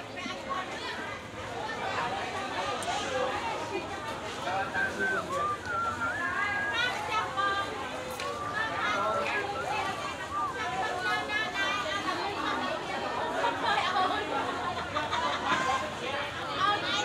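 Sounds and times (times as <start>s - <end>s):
overlapping chatter of voices: 0.0s - 17.0s.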